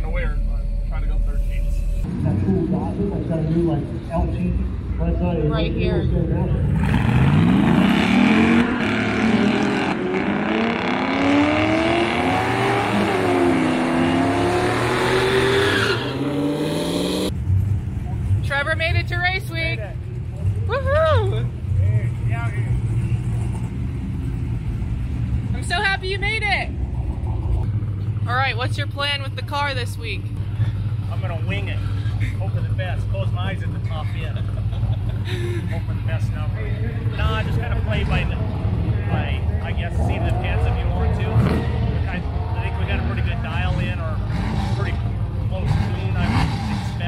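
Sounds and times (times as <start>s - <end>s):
drag car engine accelerating: 1.9s - 18.9s, 30.6s - 47.0s
voices: 31.1s - 47.0s.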